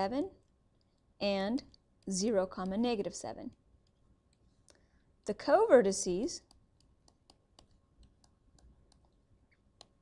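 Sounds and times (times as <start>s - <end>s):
stylus tapping on tablet screen: 6.4s - 10.0s.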